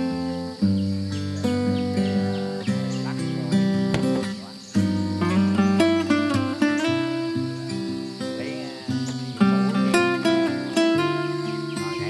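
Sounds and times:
acoustic guitar playing: 0.0 - 12.0.

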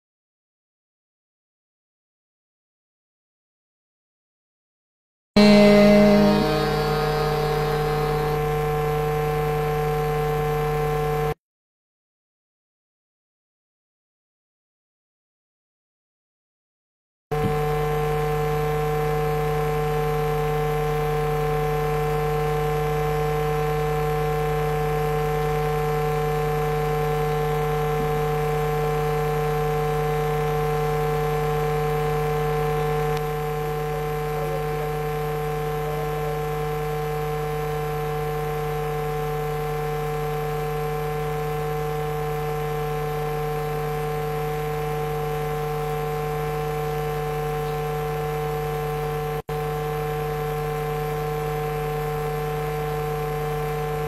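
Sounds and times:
electrical mains hum: 17.4 - 54.0.

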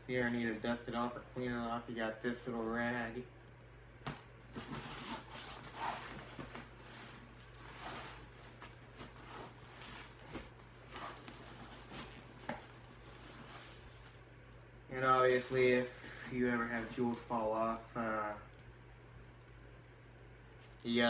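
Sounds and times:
low electrical hum: 0.0 - 21.0
cloth rustling: 4.6 - 14.6.

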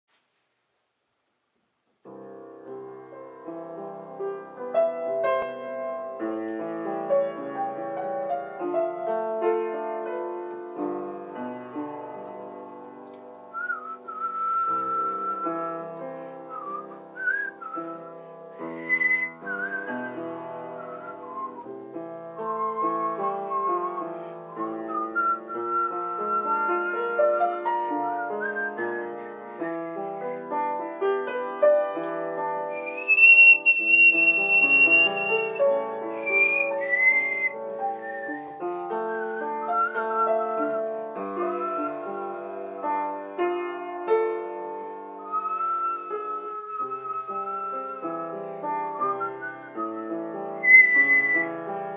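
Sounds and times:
piano chords: 2.0 - 51.9
person whistling melody: 13.5 - 21.7, 22.4 - 30.4, 32.7 - 42.5, 45.1 - 51.6.

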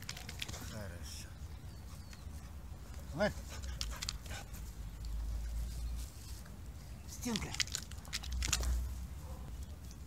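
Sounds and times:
soft clicks and rustles: 2.9 - 10.0.

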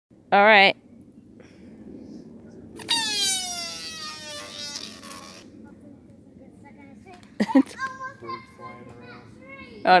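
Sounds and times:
screaming balloon squeal: 2.8 - 5.5.

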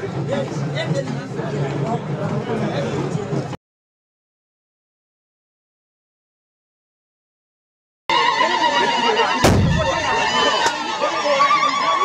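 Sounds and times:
crowd with wavering cries: 8.1 - 12.0
heavy thump with low rumble: 9.5 - 10.1.

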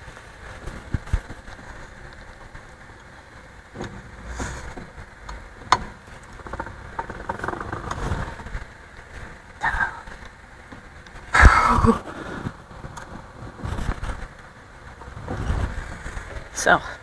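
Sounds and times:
low metal rumble: 0.8 - 10.0, 10.8 - 17.0.

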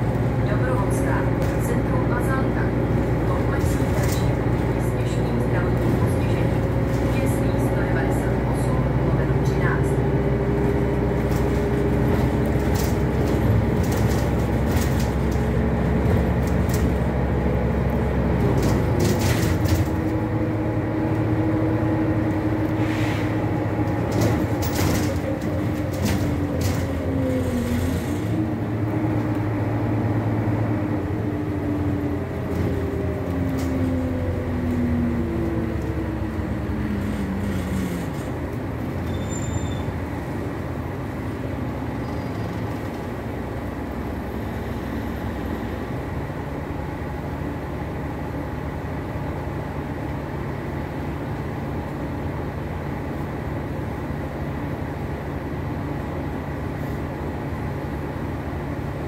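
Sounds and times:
bus engine and drivetrain whine: 0.0 - 59.0
low engine rumble: 0.0 - 59.0.

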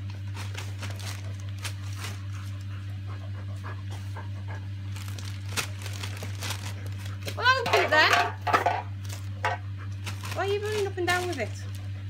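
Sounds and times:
wrapping paper rustling and tearing: 0.0 - 2.7, 4.8 - 7.7, 9.0 - 9.4, 10.0 - 12.0
dog panting: 0.0 - 7.3, 9.2 - 12.0
steady low hum: 0.0 - 12.0.

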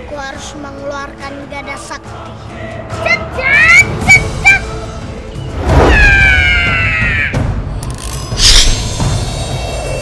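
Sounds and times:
dramatic film score: 0.0 - 10.0
whoosh: 5.5 - 6.3.

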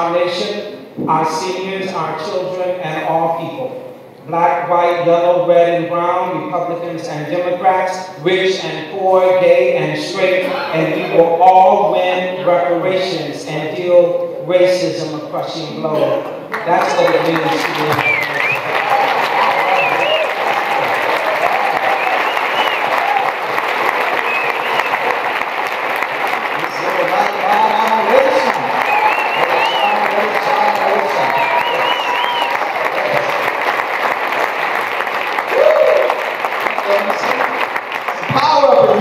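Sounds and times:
audience applauding: 16.5 - 39.0.

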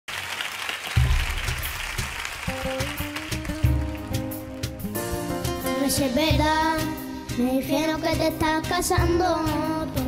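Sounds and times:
audience applause: 0.1 - 4.8.

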